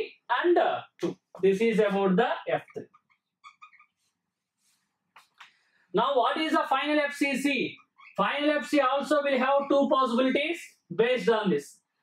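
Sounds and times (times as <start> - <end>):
marker squeaking on whiteboard: 2.5 - 5.4, 7.7 - 10.4.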